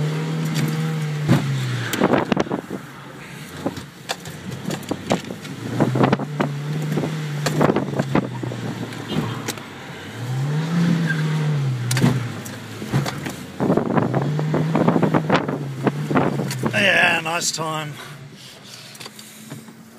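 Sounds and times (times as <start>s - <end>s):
car engine revving: 0.0s - 19.9s.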